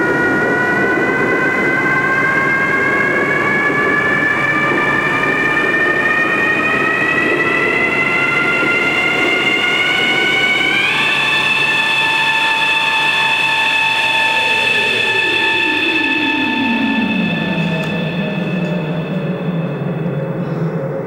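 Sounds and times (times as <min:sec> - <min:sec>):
falling low electronic tone: 0:00.0 - 0:21.0
rising electronic high tones: 0:06.6 - 0:21.0.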